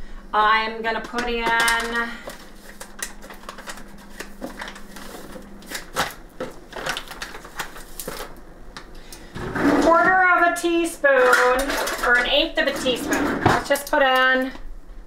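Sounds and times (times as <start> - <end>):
faint steady hum: 0.0 - 15.0
kitchen utensils clicking and tapping: 11.1 - 14.5.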